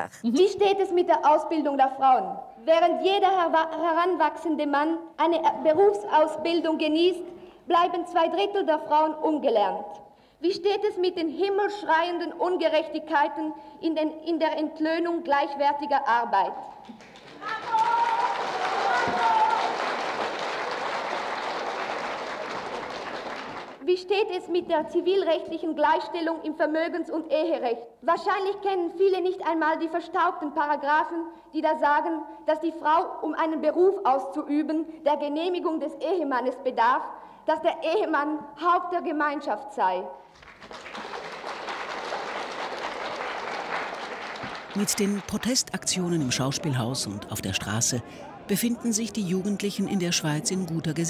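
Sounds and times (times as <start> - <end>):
audience clapping: 16.8 - 23.8, 40.3 - 48.0.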